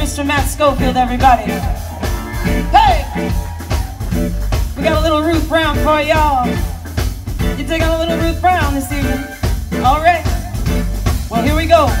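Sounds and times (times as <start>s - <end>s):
blues band playing: 0.0s - 12.0s
bent sliding lead notes: 0.9s - 8.3s.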